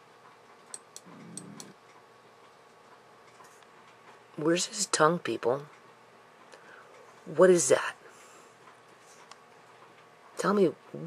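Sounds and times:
faint low murmur: 1.0s - 1.8s.

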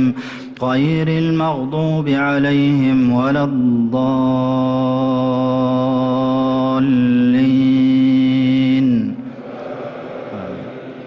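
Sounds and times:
man chanting recitation: 0.0s - 9.3s
echo in large hall: 0.0s - 11.0s
congregation singing in unison: 4.1s - 11.0s.

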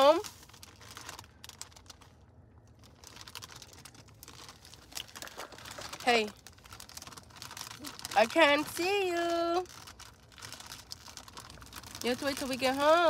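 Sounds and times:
plastic snack bag crinkling: 0.0s - 13.0s.

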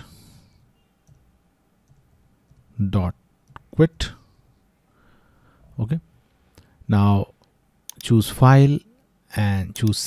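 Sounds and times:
keyboard keys clicking: 1.0s - 2.7s.

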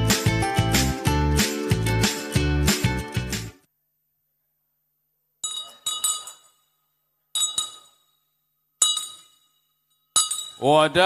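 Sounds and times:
wine glass clinks: 5.4s - 6.6s, 7.4s - 8.1s, 8.8s - 10.7s.

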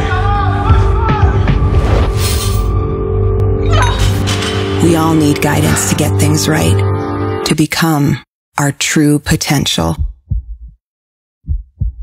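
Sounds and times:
heartbeat thumps: 9.8s - 10.8s, 11.4s - 12.0s.

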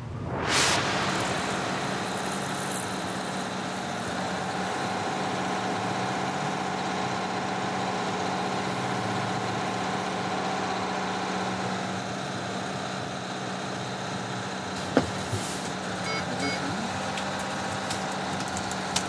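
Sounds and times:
steady mechanical drone: 0.0s - 19.0s.

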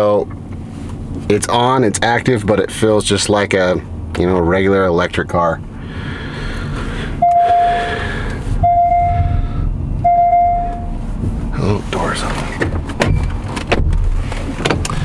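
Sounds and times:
low rumble of car rolling: 0.0s - 15.0s
car warning chime beeps: 7.2s - 11.0s.

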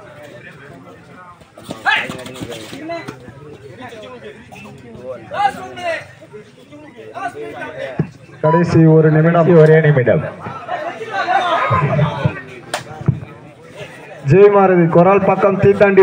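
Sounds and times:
men shouting and chattering: 0.0s - 16.0s
loud shouted calls: 10.3s - 12.7s.

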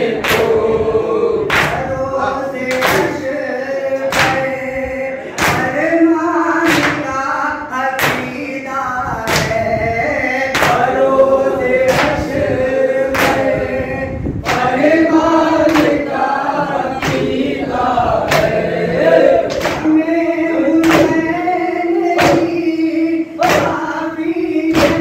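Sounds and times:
men chanting a lament in unison: 0.0s - 25.0s.

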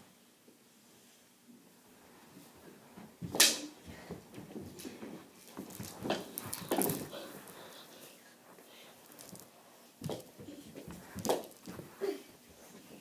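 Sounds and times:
knocks and scuffles: 2.9s - 7.6s, 8.5s - 13.0s.

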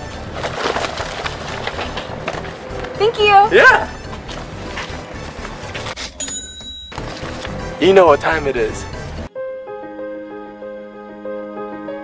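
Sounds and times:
paper banknotes and bag rustling: 0.2s - 6.2s, 7.0s - 7.8s.

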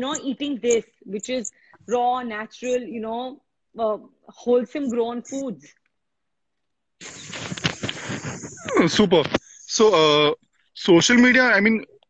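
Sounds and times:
man talking: 8.7s - 11.9s.

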